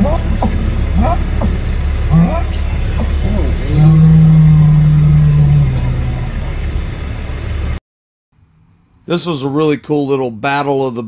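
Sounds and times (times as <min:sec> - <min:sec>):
bull bellowing: 0:00.0 - 0:07.0
wind buffeting microphone: 0:00.0 - 0:07.8.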